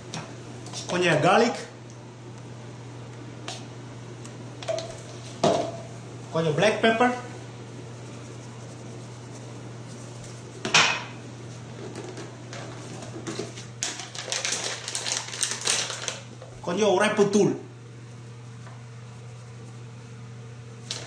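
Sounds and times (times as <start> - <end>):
steady low hum: 0.0 - 21.0
spice container shaking: 7.9 - 10.6, 13.8 - 16.3.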